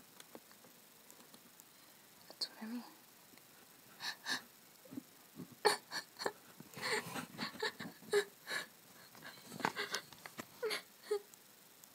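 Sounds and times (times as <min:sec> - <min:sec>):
low room noise: 0:00.0 - 0:11.9
person whispering: 0:02.3 - 0:03.0.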